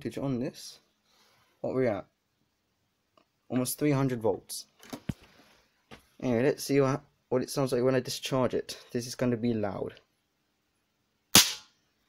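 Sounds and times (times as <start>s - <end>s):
sharp spark bang: 11.3s - 11.7s.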